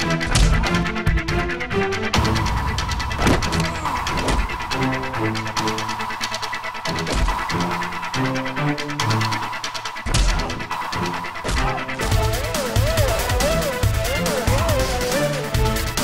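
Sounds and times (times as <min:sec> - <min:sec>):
action film score with low beat: 0:00.0 - 0:16.0
fight impact sound effects: 0:02.2 - 0:05.1.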